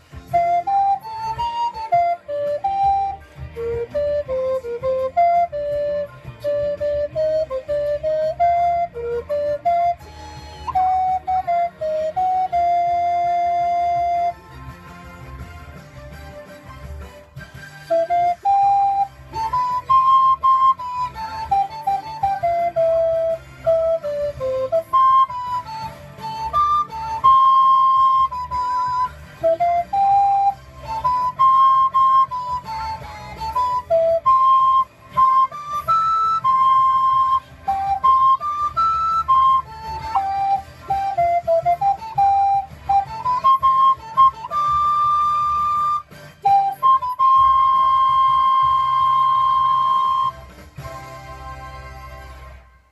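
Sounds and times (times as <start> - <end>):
alto recorder playing pop melody: 0.0 - 51.9.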